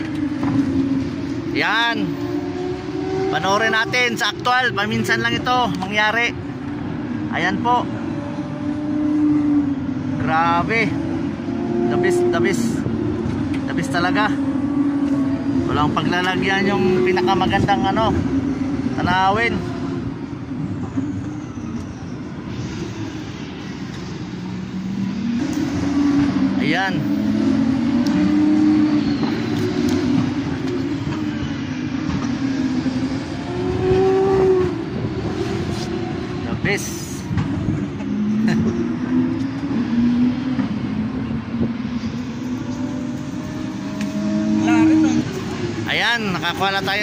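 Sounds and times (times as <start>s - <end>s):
racing car engine at high revs: 0.0s - 21.3s, 22.5s - 47.0s.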